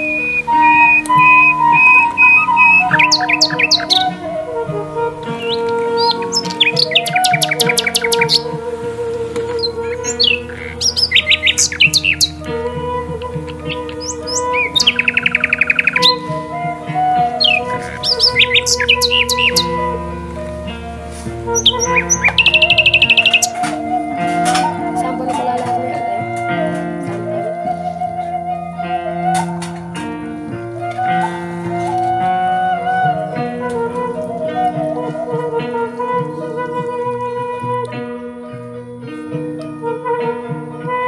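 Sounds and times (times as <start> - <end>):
bird chirps and trills: 0.0 - 28.0
sustained chord music: 0.0 - 41.0.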